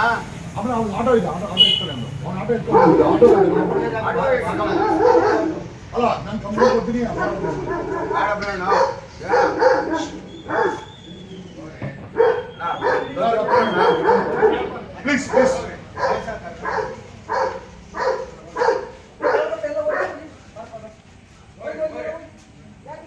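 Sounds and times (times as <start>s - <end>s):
men arguing in raised voices: 0.0s - 23.0s
dog barking: 2.7s - 3.8s, 4.5s - 5.7s, 6.5s - 10.9s, 12.1s - 14.8s, 15.4s - 20.3s.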